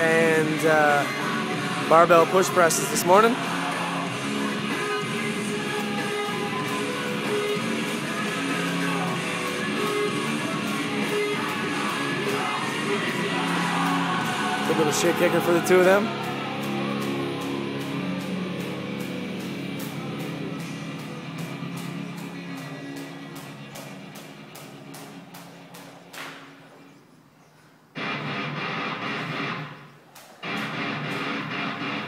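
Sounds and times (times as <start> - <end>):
background guitar music: 0.0 - 25.7, 28.0 - 29.8, 30.4 - 32.0.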